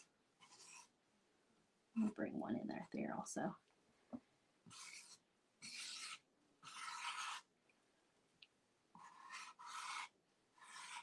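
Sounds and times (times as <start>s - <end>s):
paint marker scratching: 0.0s - 0.9s, 4.7s - 7.5s, 9.0s - 11.0s.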